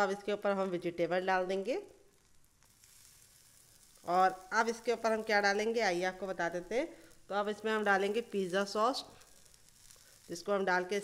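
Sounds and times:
batter sizzling in a pan: 0.0 - 11.0.

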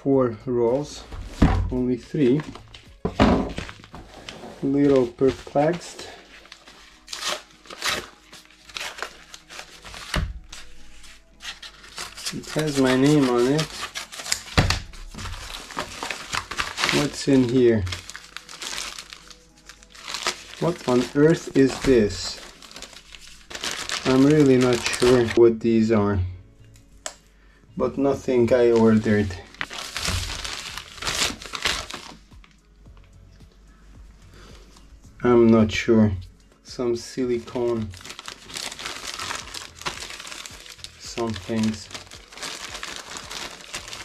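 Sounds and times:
quiet background music: 0.0 - 44.0
plastic zip bag crinkling: 3.5 - 25.4, 28.6 - 32.2, 37.3 - 44.0.

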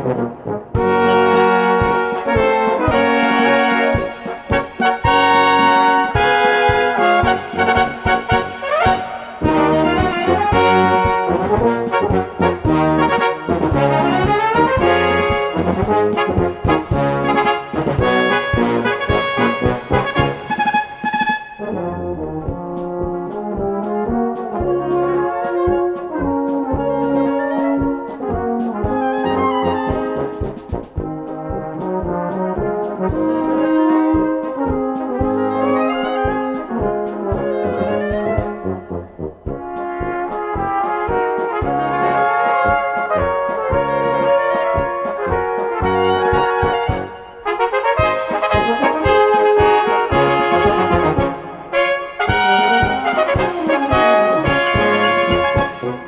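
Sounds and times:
brass band playing a polka: 0.0 - 56.0
flugelhorn and tenor horn melody: 0.0 - 56.0
trumpets: 0.0 - 56.0
bass notes on the beat: 0.1 - 47.4, 48.0 - 56.0
woodwind runs: 0.8 - 56.0.

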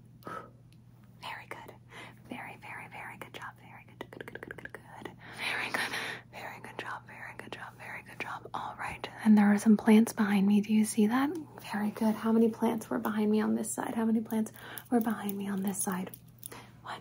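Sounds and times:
soft close-up whispering: 1.2 - 9.7, 11.1 - 17.0.

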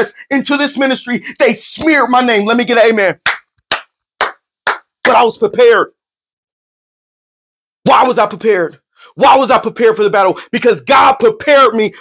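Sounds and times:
man clapping hands: 3.2 - 5.3.

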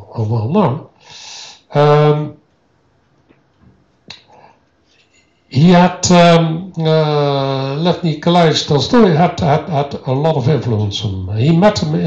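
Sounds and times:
mouth clicks: 4.1 - 4.4.

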